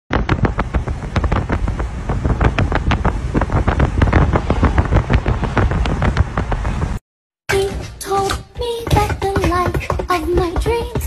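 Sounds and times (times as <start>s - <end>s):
wind buffeting microphone: 0.1s - 7.0s
low car rumble: 0.2s - 7.0s.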